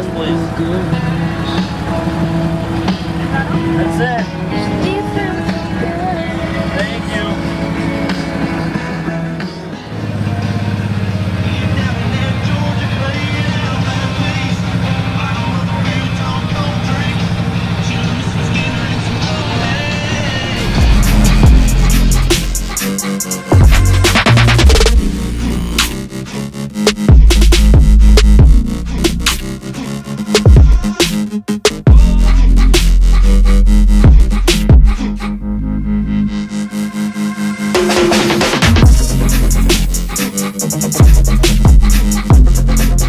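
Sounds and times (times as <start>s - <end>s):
engine running at low speed: 0.0s - 30.9s, 31.9s - 43.0s
bass-heavy electronic music: 0.0s - 43.0s.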